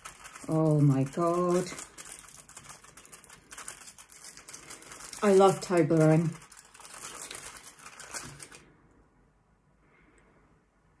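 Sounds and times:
foil wrapper crinkling: 0.0s - 8.7s.

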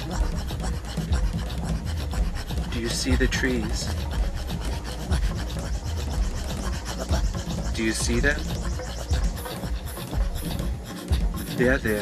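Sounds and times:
throat singing rasping breath: 0.0s - 12.0s.

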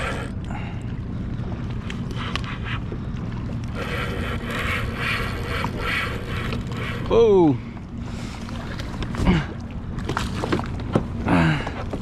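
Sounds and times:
boat motor idling: 0.0s - 12.0s.

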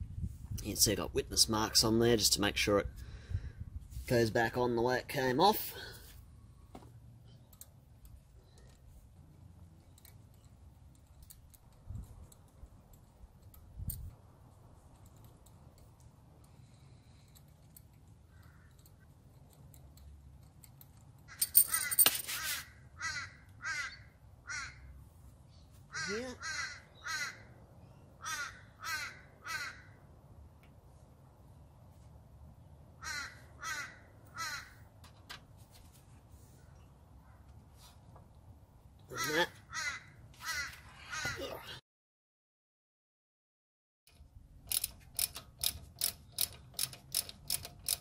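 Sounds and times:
crow cawing: 23.0s - 24.9s, 25.9s - 27.5s, 28.2s - 30.0s, 33.0s - 34.8s, 39.1s - 41.5s.

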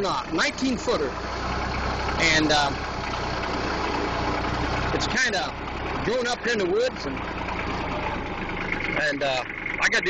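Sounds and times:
tractor diesel engine droning: 0.0s - 10.0s.

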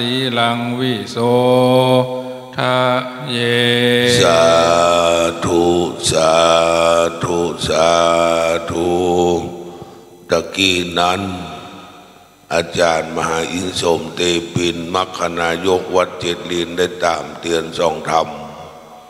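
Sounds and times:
chanting in held tones: 0.0s - 11.7s.

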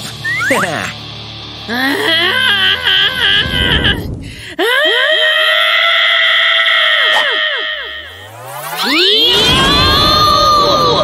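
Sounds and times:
cartoon character screaming: 5.1s - 8.2s, 8.8s - 11.0s.

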